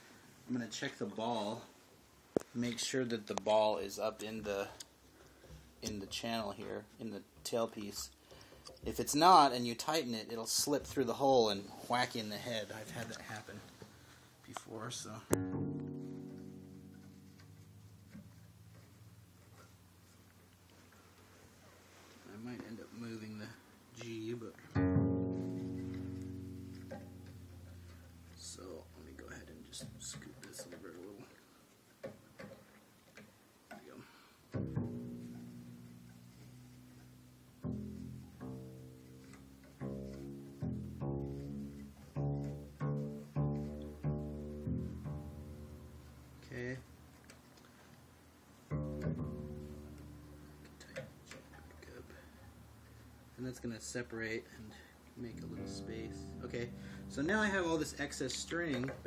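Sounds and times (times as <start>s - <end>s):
double bass string plucked: 15.1s - 20.2s, 24.0s - 31.0s, 34.5s - 47.0s, 48.6s - 52.0s, 55.2s - 59.0s.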